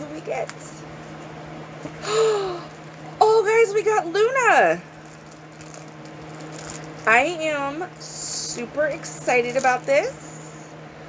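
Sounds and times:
steady low hum: 0:00.0 - 0:11.0
handling noise of packaging: 0:04.2 - 0:10.3.

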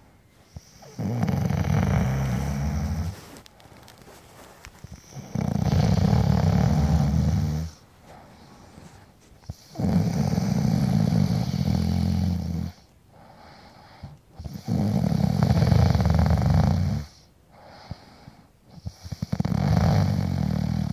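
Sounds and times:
person rasping snore-like breathing: 0:00.6 - 0:03.2, 0:09.5 - 0:12.8.

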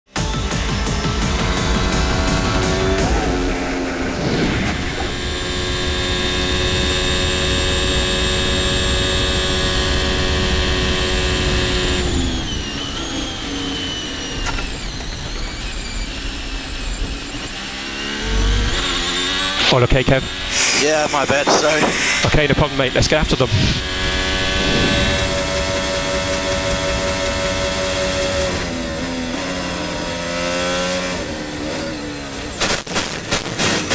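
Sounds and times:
music: 0:00.1 - 0:03.6
racing car engine at high revs: 0:00.1 - 0:33.9.

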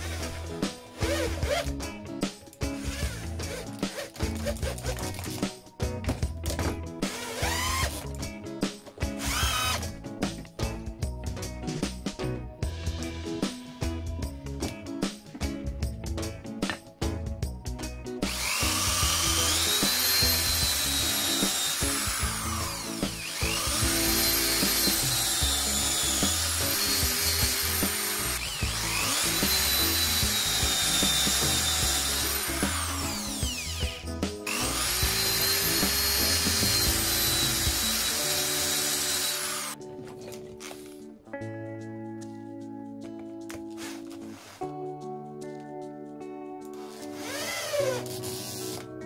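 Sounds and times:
background music: 0:00.0 - 0:49.0
cordless drill boring into wood: 0:07.1 - 0:08.0, 0:09.2 - 0:09.9, 0:18.3 - 0:39.8, 0:46.8 - 0:48.8.

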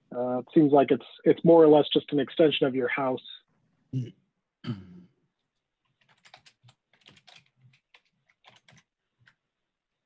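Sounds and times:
typing on computer keyboard: 0:06.0 - 0:08.9.

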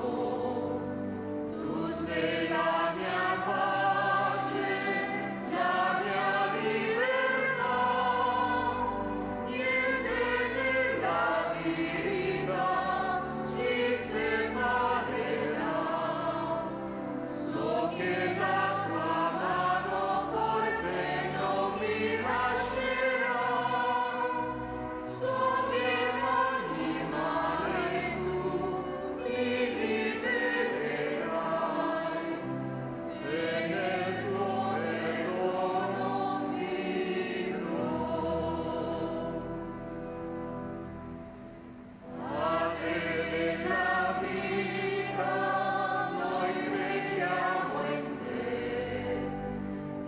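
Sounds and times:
choir singing a hymn: 0:00.0 - 0:41.2, 0:42.0 - 0:50.0.

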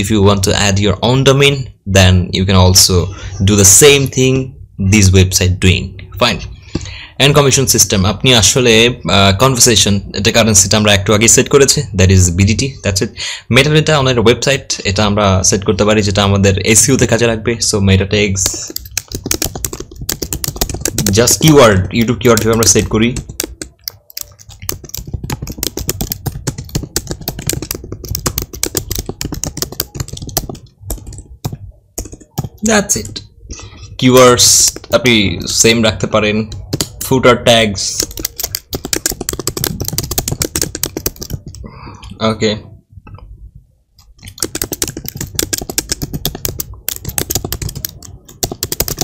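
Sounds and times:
typing on computer keyboard: 0:18.4 - 0:33.2, 0:36.5 - 0:37.0, 0:37.8 - 0:41.7, 0:44.0 - 0:49.0.

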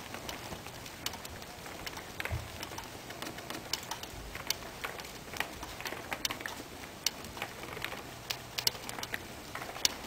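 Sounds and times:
sharp clicks and crackles: 0:00.0 - 0:10.0.

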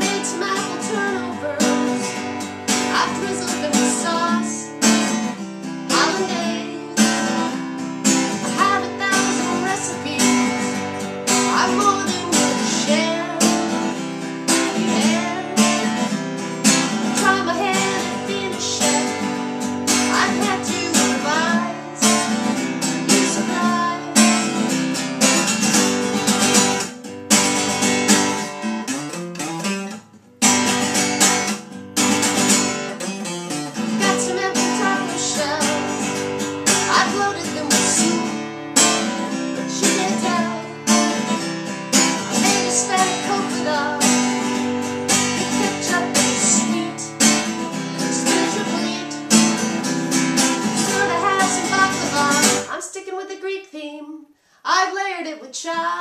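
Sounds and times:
woman singing: 0:00.0 - 0:24.8, 0:33.8 - 0:56.0
acoustic guitar strumming: 0:00.0 - 0:52.8.

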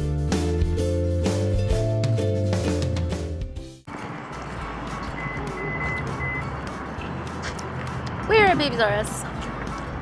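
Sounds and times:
car park background noise: 0:03.9 - 0:10.0
short high electronic beeps: 0:05.2 - 0:06.5.

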